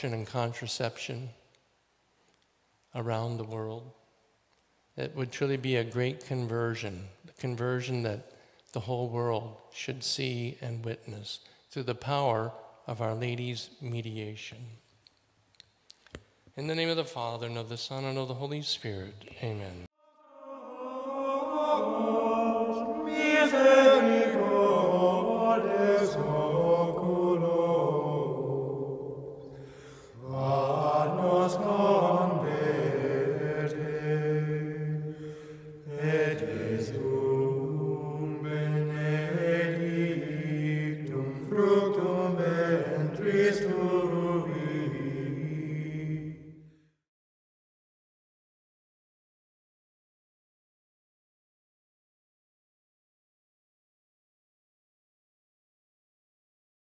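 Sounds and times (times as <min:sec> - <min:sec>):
chant sung over held pitch: 0:20.0 - 0:46.7.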